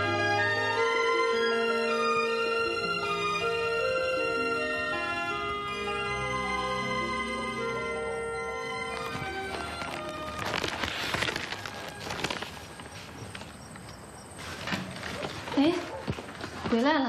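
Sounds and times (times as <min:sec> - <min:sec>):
soft background music: 0:00.0 - 0:14.4
rustling: 0:08.7 - 0:17.0.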